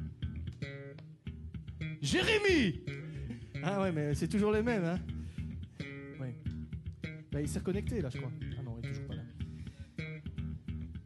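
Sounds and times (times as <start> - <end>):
electric guitar notes plucked: 0.0 - 11.0.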